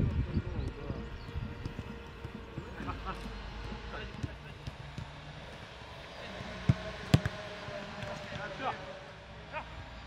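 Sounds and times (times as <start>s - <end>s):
ball being kicked: 6.6s - 8.5s.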